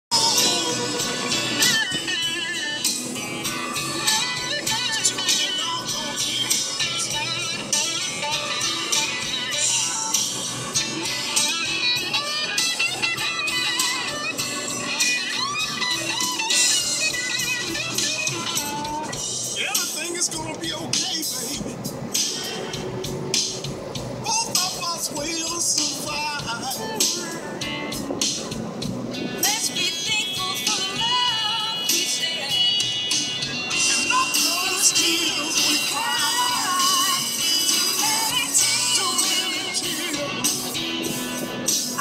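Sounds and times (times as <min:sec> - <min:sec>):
background music: 0:00.1 - 0:42.0.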